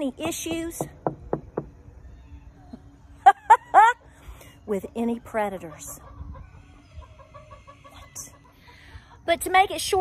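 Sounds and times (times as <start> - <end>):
chickens clucking: 4.2 - 9.5.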